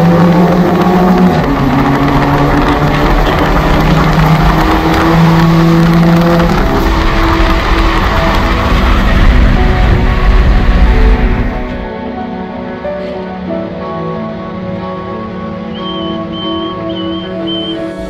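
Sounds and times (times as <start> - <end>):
car engine exhaust at road speed: 0.0 - 11.7.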